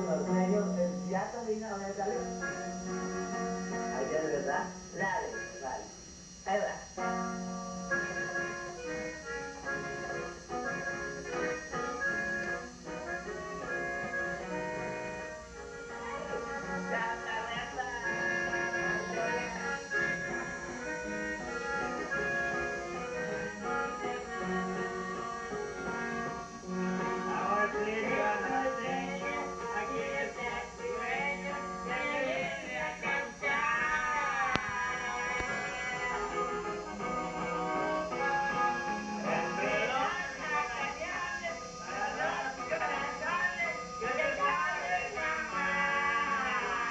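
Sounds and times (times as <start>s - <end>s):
accordion music: 0.0s - 46.9s
guitar strumming: 0.0s - 46.9s.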